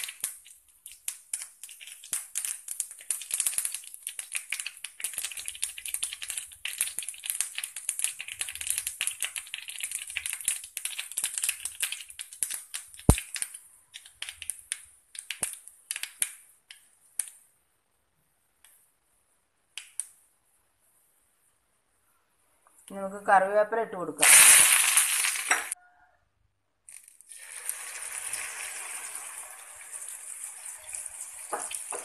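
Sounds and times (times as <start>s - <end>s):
oil crackling in a frying pan: 0.0s - 16.4s, 24.2s - 25.8s, 26.9s - 32.0s.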